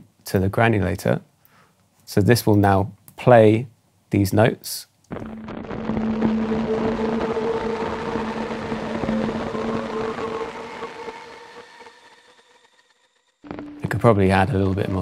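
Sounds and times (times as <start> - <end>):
grainy synth pad notes: 5.1 - 15.0.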